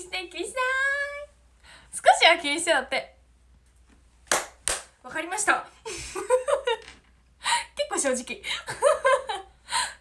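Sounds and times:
sharp hand claps: 4.3 - 5.0.

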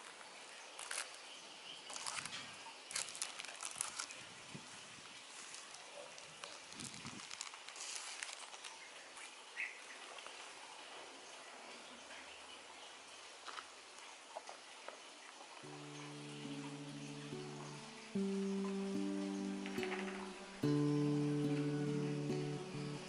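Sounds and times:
plastic wrapping crinkling: 0.8 - 1.2, 1.9 - 4.3, 5.3 - 9.3
acoustic guitar music: 15.6 - 23.0.

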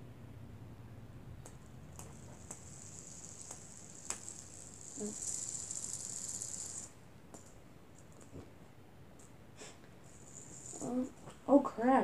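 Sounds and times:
fidget spinner whirring: 1.4 - 8.3, 10.0 - 11.5
fingers clicking on spinner: 1.4 - 8.3.

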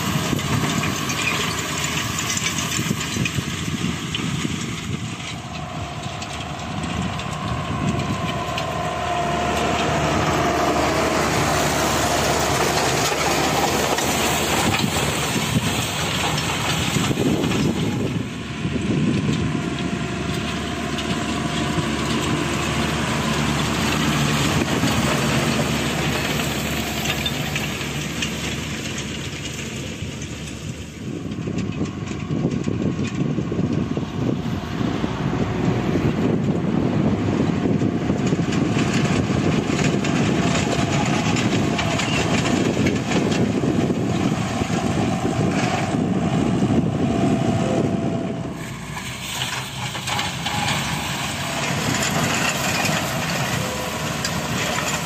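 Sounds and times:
tractor diesel engine under load: 0.0 - 55.0.

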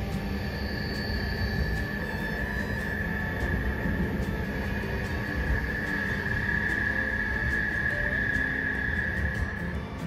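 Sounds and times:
steady high whine: 0.0 - 10.0
train cabin low rumble: 0.0 - 10.0.

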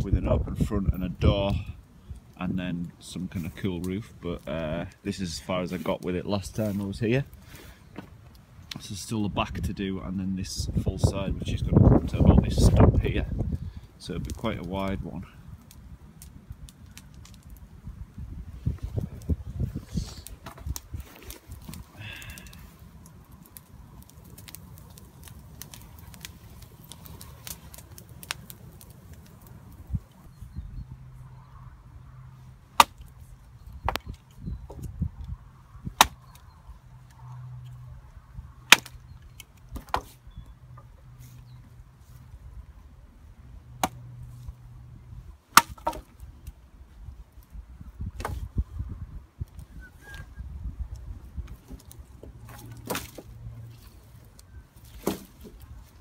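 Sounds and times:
wind rumble on microphone: 0.0 - 2.3, 8.9 - 32.1, 33.2 - 40.6, 46.2 - 52.4
hatchet chopping a branch: 32.8 - 33.1, 36.0 - 36.4, 38.7 - 39.0, 43.8 - 44.0, 45.5 - 46.1, 52.5 - 53.3, 55.0 - 55.5.

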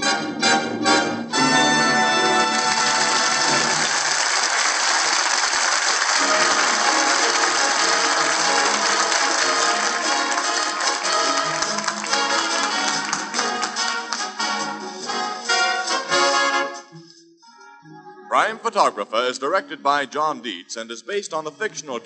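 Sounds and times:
orchestral theme music: 0.0 - 17.2.

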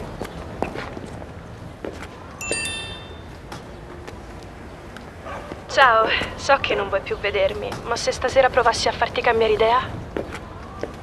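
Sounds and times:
footsteps on stone pavement: 0.0 - 11.0
low street background: 0.0 - 11.0.

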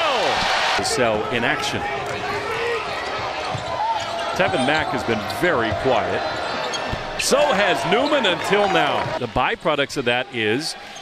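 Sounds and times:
arena crowd noise: 0.0 - 11.0
sneakers squeaking: 2.0 - 9.2.

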